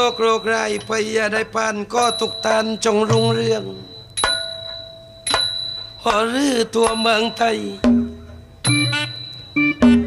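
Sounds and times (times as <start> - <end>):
metal percussion strikes: 2.0 - 10.0.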